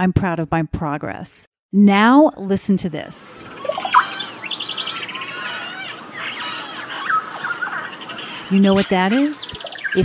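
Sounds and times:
chorus of birds chirping: 2.8 - 10.0.

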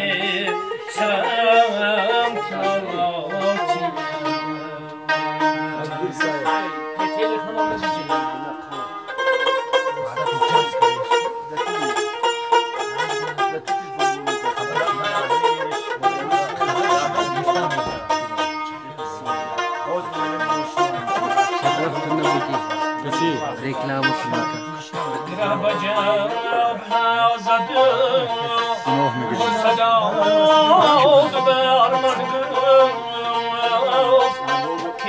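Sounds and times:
plucked lute playing: 0.0 - 35.0.

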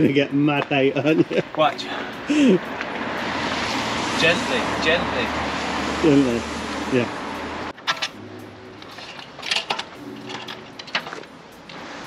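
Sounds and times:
bicycle metallic clicks and rattles: 7.7 - 8.2, 8.8 - 11.8.

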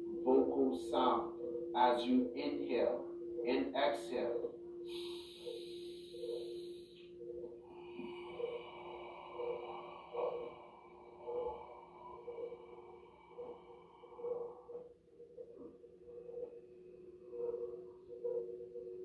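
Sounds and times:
low ambient hum with pulsing tones: 0.0 - 19.0
person breathing out: 4.9 - 7.0, 7.7 - 14.3.

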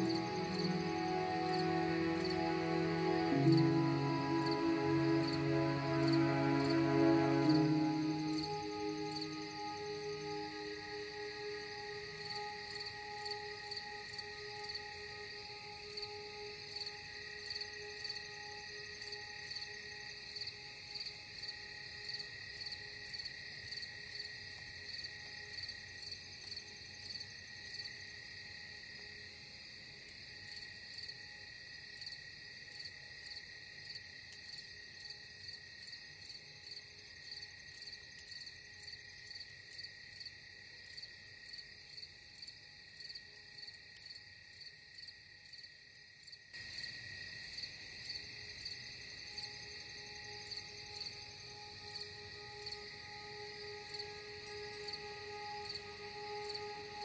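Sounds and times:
faint ambient tones: 0.0 - 31.6, 48.4 - 57.0
crickets chirping: 0.0 - 57.0.

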